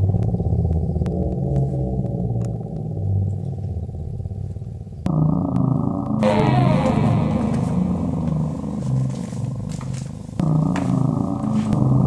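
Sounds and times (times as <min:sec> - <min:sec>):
muffled droning synthesizer music: 0:00.0 - 0:12.0.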